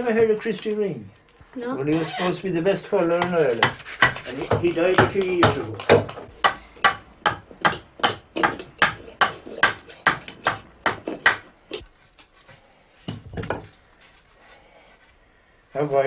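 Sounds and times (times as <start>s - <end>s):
hammer knocking on wood: 3.1s - 11.8s.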